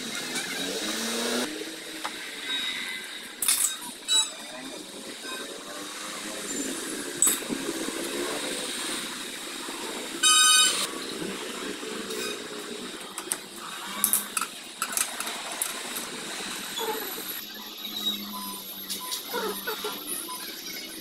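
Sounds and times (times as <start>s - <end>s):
short loud beep: 10.2s - 10.8s.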